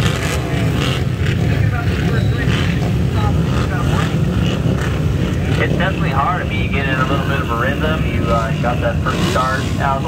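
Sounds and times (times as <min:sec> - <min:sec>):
racing motorcycle engines rumbling: 0:00.0 - 0:10.0
voices: 0:00.2 - 0:10.0.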